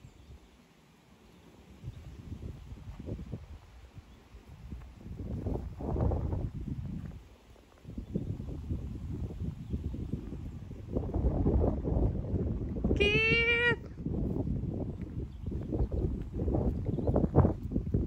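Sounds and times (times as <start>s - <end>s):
wind buffeting microphone: 1.8s - 18.0s.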